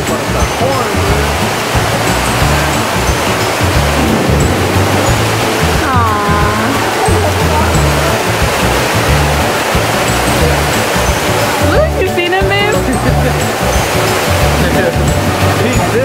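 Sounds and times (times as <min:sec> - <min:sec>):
background music with bass line: 0:00.0 - 0:16.0
rushing water: 0:00.0 - 0:16.0.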